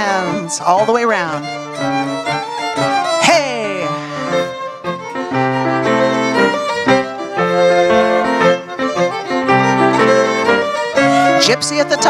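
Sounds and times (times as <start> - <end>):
fiddle melody: 0.0 - 12.0
piano chords: 0.0 - 12.0.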